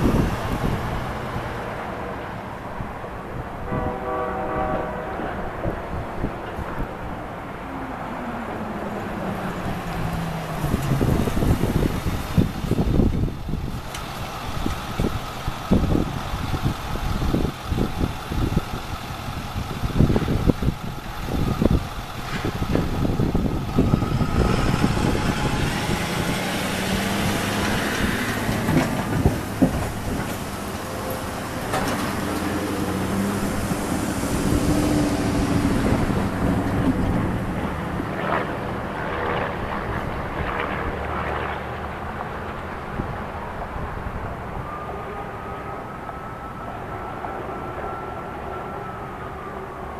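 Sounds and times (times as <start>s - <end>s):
freight train wheels rumbling on rail: 0.0s - 45.0s
wind gusting on microphone: 0.0s - 47.9s.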